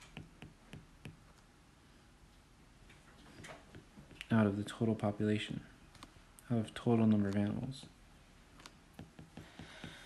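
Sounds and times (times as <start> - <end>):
stylus tapping on glass screen: 0.0 - 1.2, 8.9 - 10.0.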